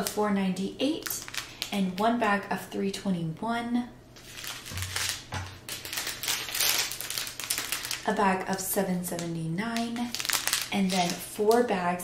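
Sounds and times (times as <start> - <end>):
plastic bags crinkling: 0.9 - 2.1, 4.2 - 11.8
tiny beads rattling in bags: 4.4 - 8.6, 9.2 - 11.3.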